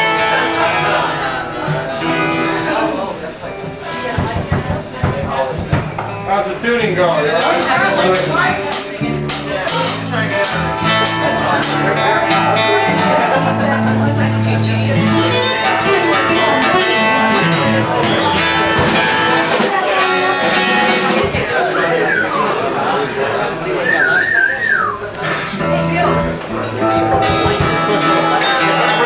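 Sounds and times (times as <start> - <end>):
acoustic guitar playing: 0.0 - 29.0
indistinct voices: 0.0 - 29.0.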